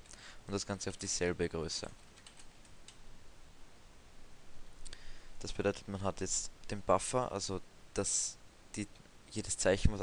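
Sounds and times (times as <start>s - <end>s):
low hiss: 0.0s - 10.0s
computer keyboard keystrokes: 2.2s - 3.0s.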